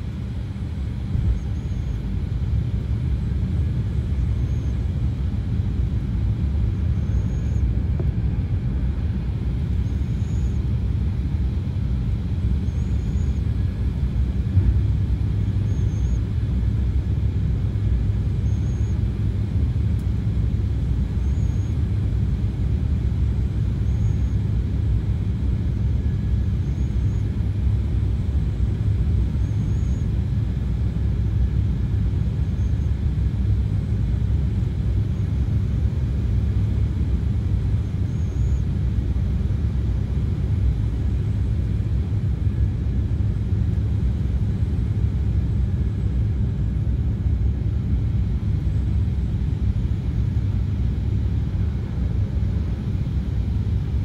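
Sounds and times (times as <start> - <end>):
airliner cabin rumble: 0.0 - 54.0.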